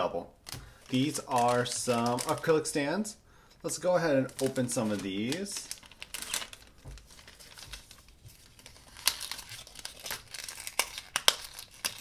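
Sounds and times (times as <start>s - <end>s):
plastic packet tearing: 0.4s - 2.5s, 4.2s - 12.0s
wrapper crinkling: 0.4s - 2.8s, 4.2s - 12.0s.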